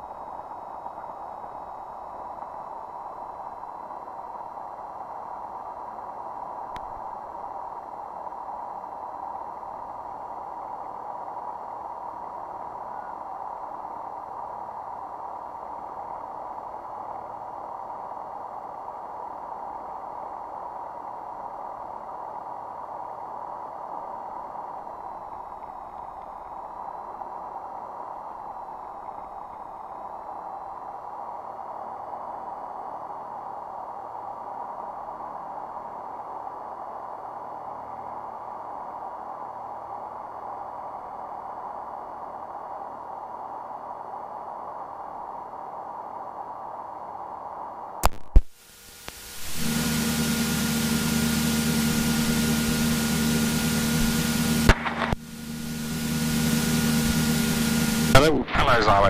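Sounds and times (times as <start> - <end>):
high-pitched hum: 48.0 - 59.0
aircraft engine idling: 49.2 - 59.0.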